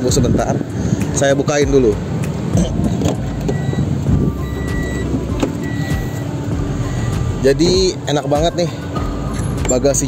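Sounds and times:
low vehicle rumble: 0.0 - 10.0
car door clicks and knocks: 2.2 - 6.1.

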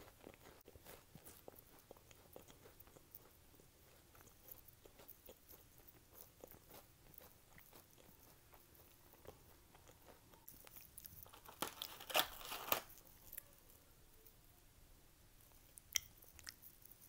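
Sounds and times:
chewing crisp cookie: 0.0 - 14.4, 15.4 - 17.0.

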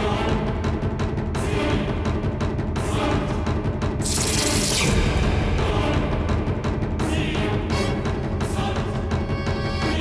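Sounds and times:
suspenseful drama score: 0.0 - 10.0.

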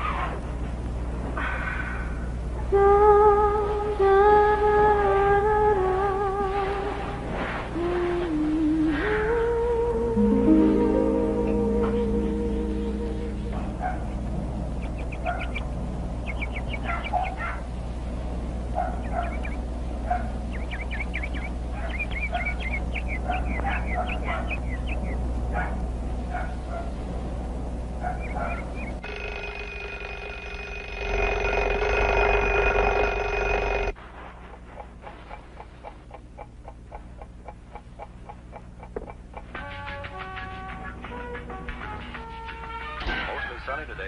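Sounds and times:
birds chirping: 11.9 - 26.7, 27.9 - 31.2.

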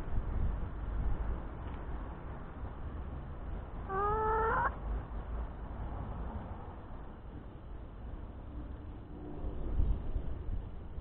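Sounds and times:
hen call: 3.9 - 4.7.

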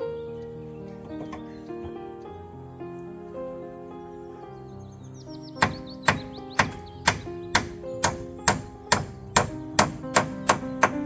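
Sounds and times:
background music: 0.0 - 11.0
hammer striking nail in wood: 5.6 - 11.0.

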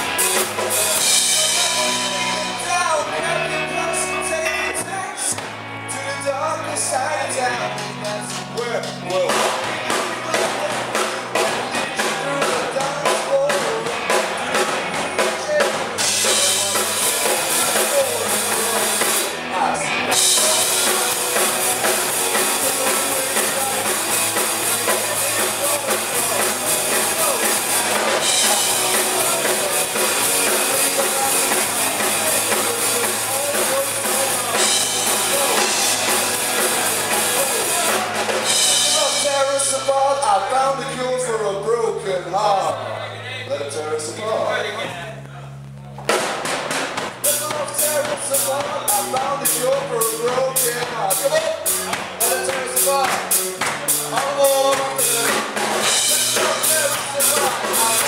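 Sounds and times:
rock band playing: 0.0 - 58.0
loud cymbals: 15.2 - 39.9, 46.2 - 58.0.

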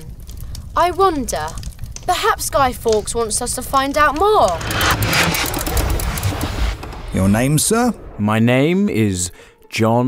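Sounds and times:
low rumble: 3.9 - 8.7
rushing whoosh: 4.5 - 8.4.

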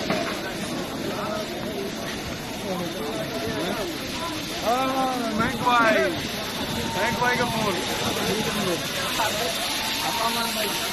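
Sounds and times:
several people talking: 0.0 - 10.9.

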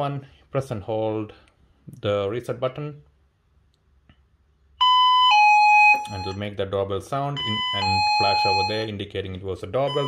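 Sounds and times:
electronic doorbell chime: 4.8 - 6.5, 7.4 - 8.9, 9.8 - 10.0.

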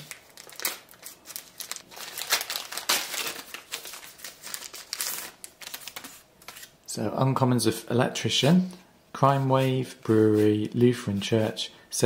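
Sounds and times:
foil wrapper crinkling and tearing: 0.0 - 6.7.

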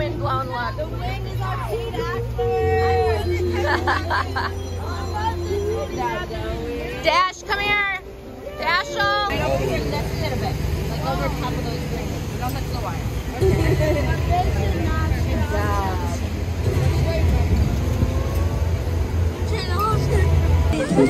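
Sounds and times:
people's voices: 0.0 - 21.0.

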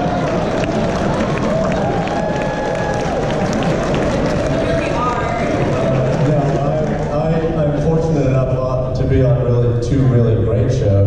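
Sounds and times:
audience murmur: 0.0 - 11.0
man speaking over public address: 5.7 - 11.0.

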